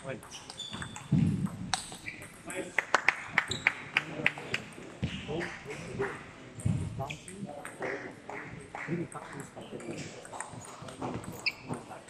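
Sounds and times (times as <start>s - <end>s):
people talking in large hall: 0.0s - 12.0s.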